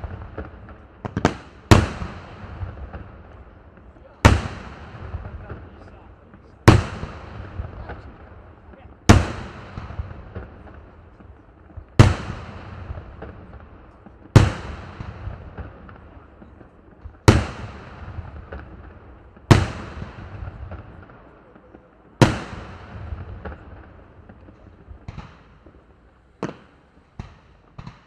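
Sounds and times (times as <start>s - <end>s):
small firework pops: 0.0s - 28.0s.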